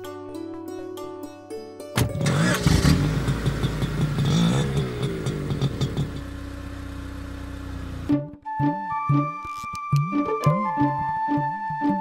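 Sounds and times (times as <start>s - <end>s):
plucked-string film music: 0.0s - 12.0s
car engine starting and idling: 2.0s - 8.2s.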